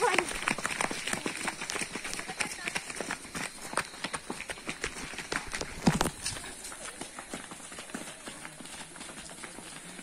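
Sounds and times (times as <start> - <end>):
running footsteps on gravel: 0.0 - 10.0.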